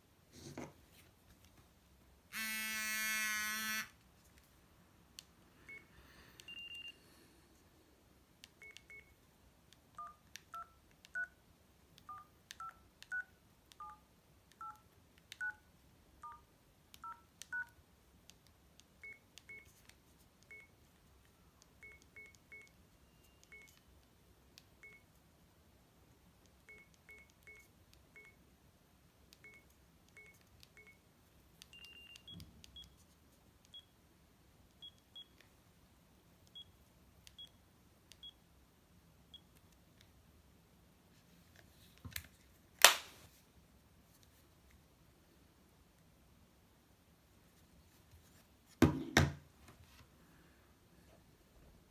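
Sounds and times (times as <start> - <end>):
phone keypad beeps: 6.4 - 7.0, 8.6 - 9.1, 10.0 - 11.4, 12.0 - 14.0, 14.6 - 14.8, 15.4 - 15.6, 16.2 - 16.4, 17.0 - 17.8, 20.5 - 20.8, 21.8 - 23.8, 24.8 - 25.1, 26.7 - 28.4, 29.4 - 31.0, 31.7 - 33.0.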